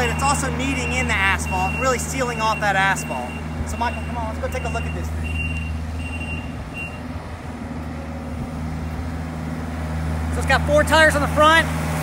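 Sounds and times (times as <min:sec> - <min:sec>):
road roller engine hum: 0:00.0 - 0:12.0
short high beeps: 0:02.5 - 0:07.0.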